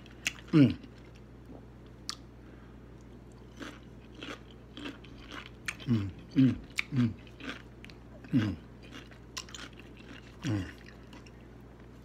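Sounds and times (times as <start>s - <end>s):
person chewing crunchy food: 0.0s - 2.3s, 3.0s - 12.0s.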